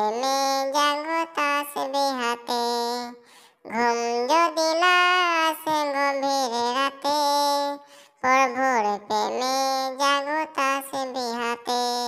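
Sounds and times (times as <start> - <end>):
high pitched-up cartoon voice singing: 0.0 - 12.0.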